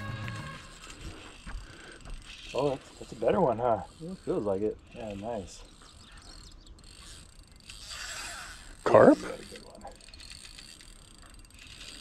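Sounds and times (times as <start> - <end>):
fishing reel ticking: 0.0 - 12.0.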